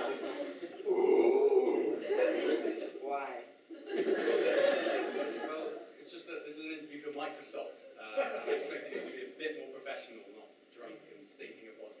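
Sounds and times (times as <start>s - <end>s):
short pitched vocal sound: 0.8s - 2.2s.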